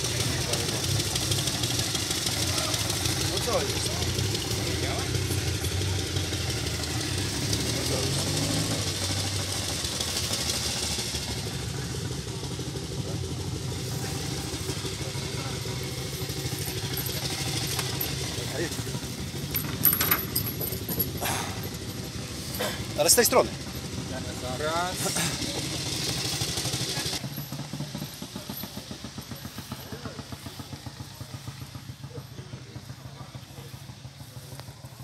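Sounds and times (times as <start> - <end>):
motorcycle engine idling: 0.0 - 35.0.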